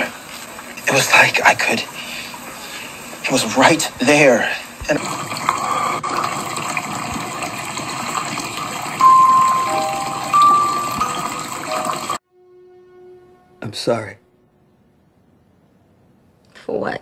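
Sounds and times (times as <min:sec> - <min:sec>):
water rushing: 0:04.8 - 0:12.2
soft held musical notes: 0:09.0 - 0:12.2.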